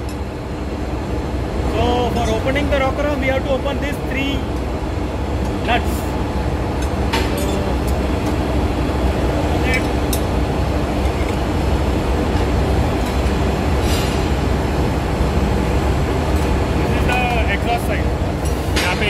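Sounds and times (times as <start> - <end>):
engine-room machinery drone: 0.0 - 19.0.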